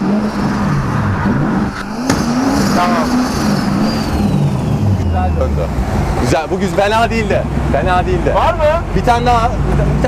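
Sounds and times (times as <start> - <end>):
car engine revving in a drift: 0.0 - 6.8.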